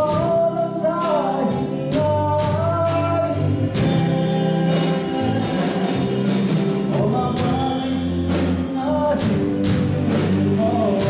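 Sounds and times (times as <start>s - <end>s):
worship band playing: 0.0s - 11.0s.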